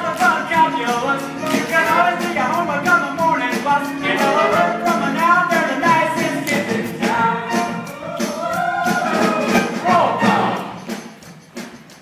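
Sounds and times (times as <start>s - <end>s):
cast singing with accompaniment: 0.0s - 10.8s.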